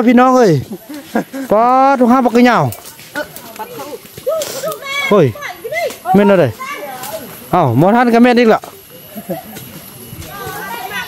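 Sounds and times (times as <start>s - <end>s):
people calling and talking: 0.0s - 11.0s.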